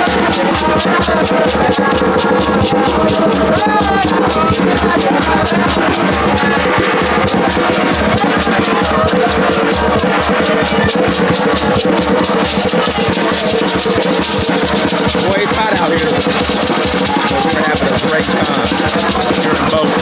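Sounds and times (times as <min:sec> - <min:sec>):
drums playing fast rhythm: 0:00.0 - 0:20.0
gourd rattles shaken: 0:00.0 - 0:20.0
voices: 0:00.0 - 0:20.0.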